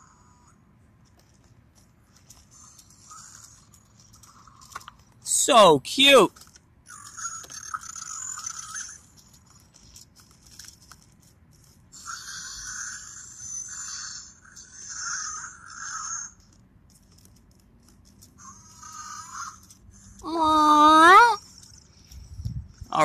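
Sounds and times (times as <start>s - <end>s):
electronic toy creature sounds: 2.2s - 10.5s, 11.9s - 16.6s, 18.2s - 23.0s.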